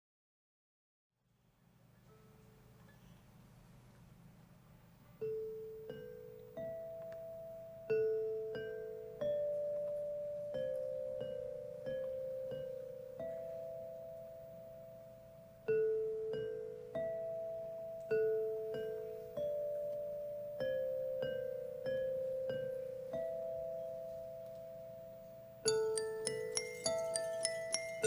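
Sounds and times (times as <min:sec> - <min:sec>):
metallophone melody: 0:05.1 - 0:28.0.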